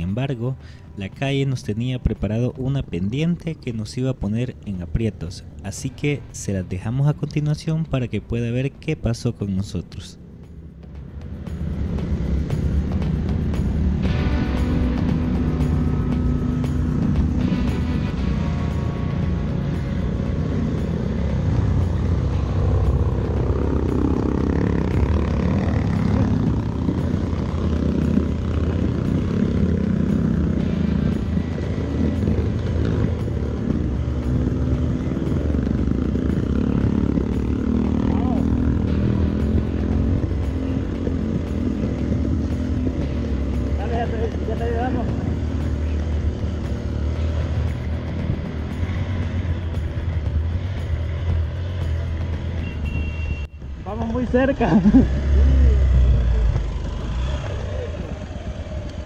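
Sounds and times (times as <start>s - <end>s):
motorcycle engine running: 10.2s - 59.0s.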